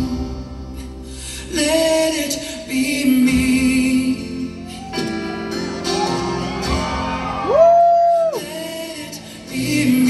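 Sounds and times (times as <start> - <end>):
acoustic band playing: 0.0 - 10.0
person whooping: 4.6 - 8.6.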